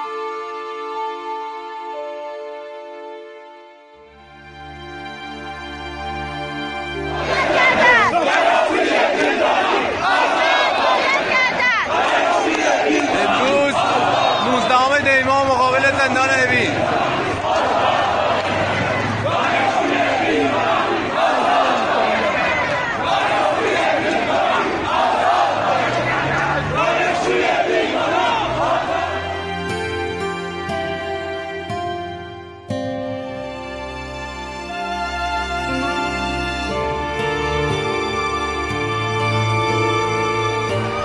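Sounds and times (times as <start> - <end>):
background music: 0.0 - 10.2, 26.6 - 41.0
crowd of protesters shouting: 7.1 - 29.4.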